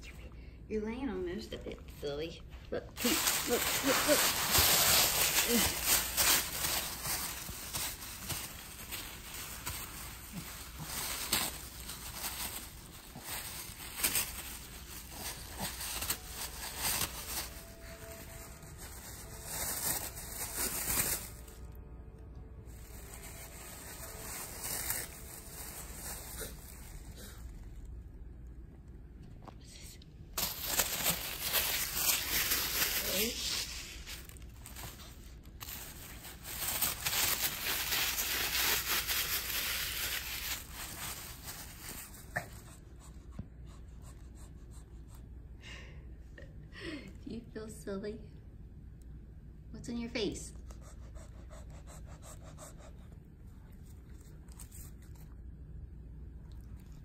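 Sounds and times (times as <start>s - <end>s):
dog tearing paper: 3.0s - 18.4s, 19.0s - 21.5s, 22.8s - 27.3s, 30.4s - 42.5s.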